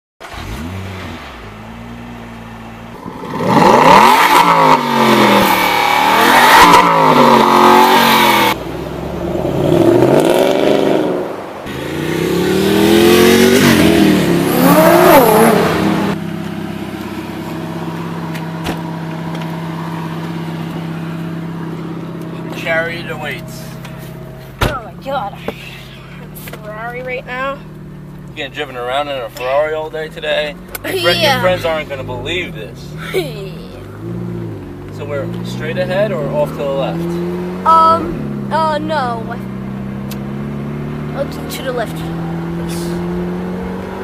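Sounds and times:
sports car engine revving: 0.2 - 44.0.

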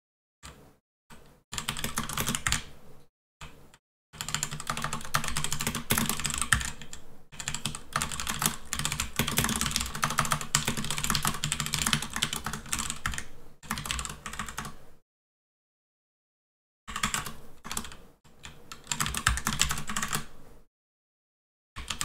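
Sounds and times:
fast typing on a keyboard: 1.6 - 2.7, 4.2 - 14.8, 16.9 - 20.3, 21.8 - 22.0.

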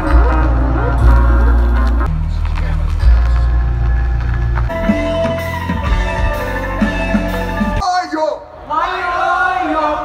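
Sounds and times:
deep bass notes: 0.0 - 7.8
live band music: 0.0 - 7.8.

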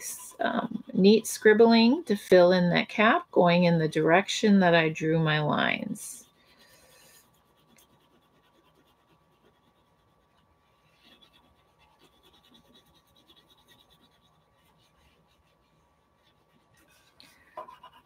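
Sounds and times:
oil pastel scratching on paper: 0.0 - 3.2, 3.9 - 18.0.

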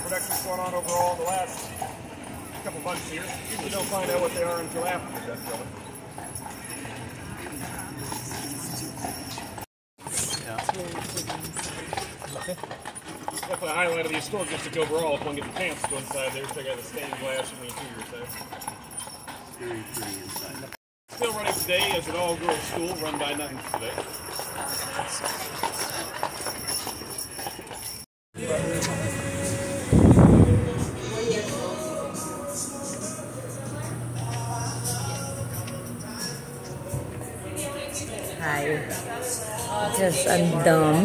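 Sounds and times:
horse hooves clip-clopping: 0.0 - 28.0
faint voices: 30.4 - 41.0.

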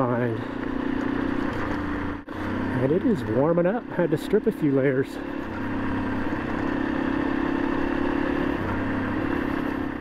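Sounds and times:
tyres on gravel road: 0.0 - 10.0
vehicle engine running: 0.0 - 10.0.

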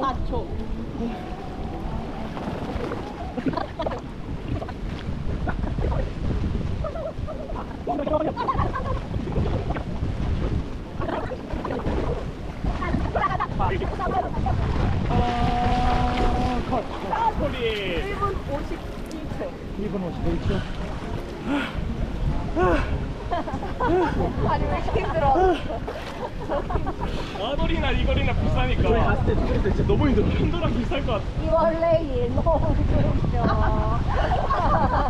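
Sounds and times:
wind rumbling on microphone: 0.0 - 35.0
swimmers splashing: 0.6 - 5.4, 10.5 - 27.5.

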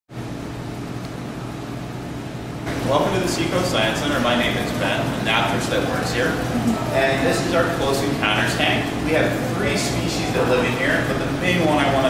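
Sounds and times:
equipment hum and hiss: 0.1 - 12.0.

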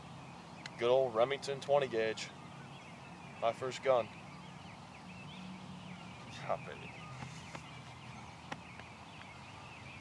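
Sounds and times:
small birds chirping: 0.0 - 10.0.

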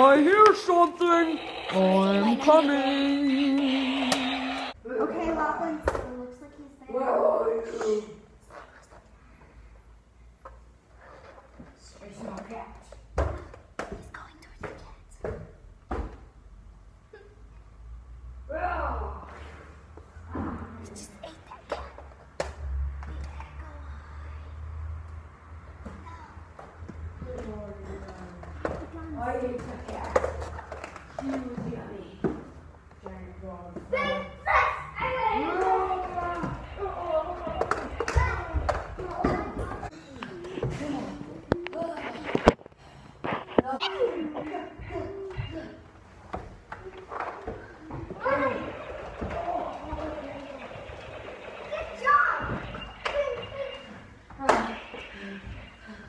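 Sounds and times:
children's voices: 23.0 - 24.9, 33.9 - 42.5, 46.8 - 55.6
children playing: 33.9 - 42.3, 46.8 - 56.0.

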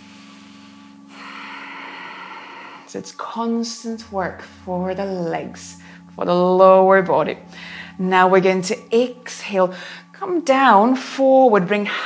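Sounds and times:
woman breathing: 0.0 - 3.1, 5.8 - 6.2, 7.4 - 8.0, 9.7 - 10.2.

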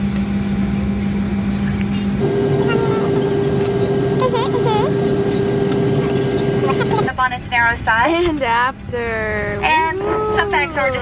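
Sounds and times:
airliner cabin noise: 2.0 - 7.2.

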